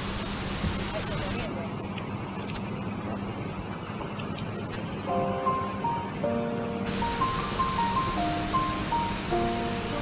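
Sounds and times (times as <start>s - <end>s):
boat engine humming: 0.0s - 10.0s
rushing noise: 5.2s - 10.0s.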